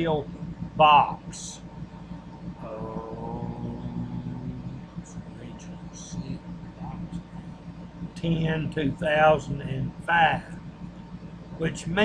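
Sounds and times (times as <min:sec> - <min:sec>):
low background hum: 0:00.0 - 0:12.0
man's long hesitation sound: 0:00.0 - 0:12.0.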